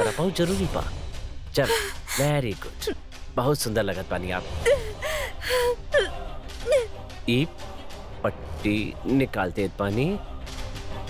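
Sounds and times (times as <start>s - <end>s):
woman gasping and whimpering: 0.0s - 0.6s, 1.6s - 2.3s, 4.6s - 6.9s.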